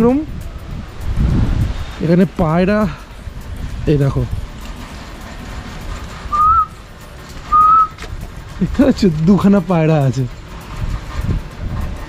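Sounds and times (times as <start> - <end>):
whistled notes: 6.2 - 6.8, 7.4 - 8.0.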